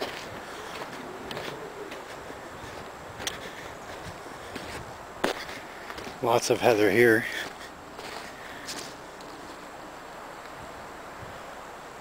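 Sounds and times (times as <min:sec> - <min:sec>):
footsteps on sandy ground: 0:00.0 - 0:09.7.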